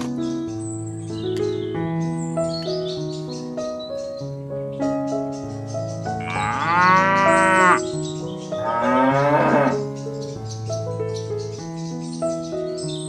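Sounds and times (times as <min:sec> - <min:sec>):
background music: 0:00.0 - 0:13.0
cow mooing: 0:06.2 - 0:07.8, 0:08.6 - 0:09.8.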